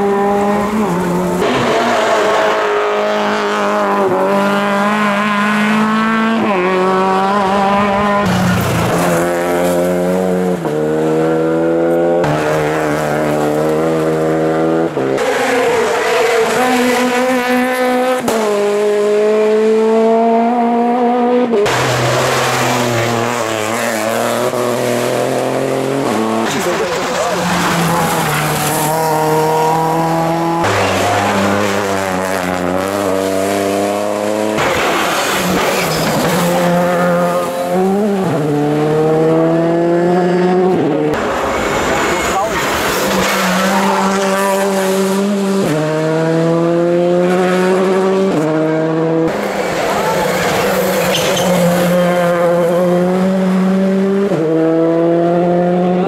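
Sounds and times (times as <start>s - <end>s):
rally car engines revving: 0.0s - 56.0s.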